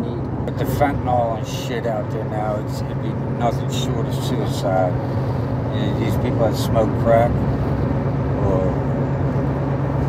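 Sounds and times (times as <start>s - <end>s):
road and wind noise in car: 0.0s - 10.0s.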